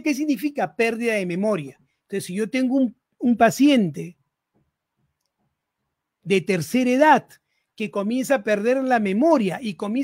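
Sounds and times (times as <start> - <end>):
faint soft clicks: 4.5 - 5.7.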